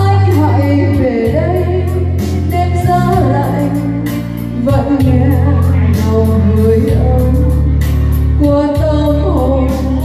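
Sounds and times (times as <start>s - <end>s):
woman singing into a microphone: 0.0s - 10.0s.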